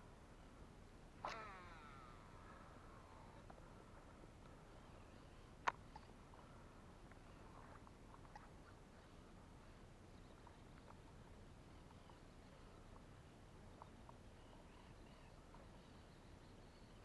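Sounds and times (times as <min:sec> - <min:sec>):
faint chirps and ticks: 0:00.0 - 0:17.0.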